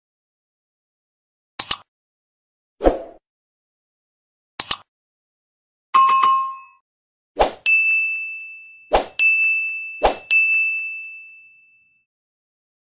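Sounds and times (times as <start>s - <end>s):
bright ringing ding: 7.7s - 12.0s.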